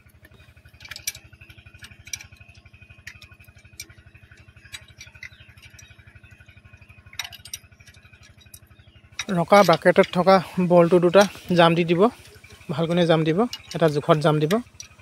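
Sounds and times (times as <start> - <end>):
engine chugging faintly: 0.0 - 15.0
spanner metal clicks: 0.0 - 15.0.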